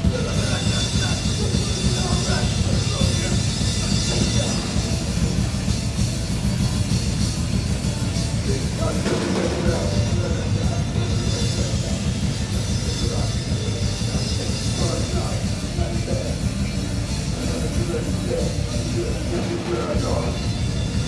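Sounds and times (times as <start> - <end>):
electric guitars: 0.0 - 21.0
pounding drum kit: 0.0 - 21.0.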